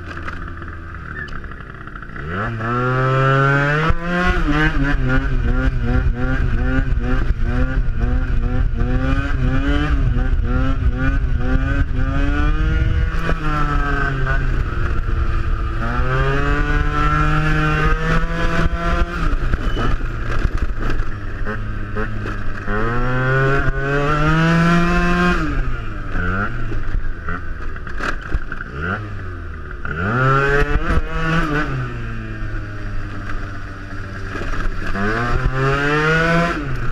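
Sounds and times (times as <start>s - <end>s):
scooter engine revving: 0.0s - 36.9s.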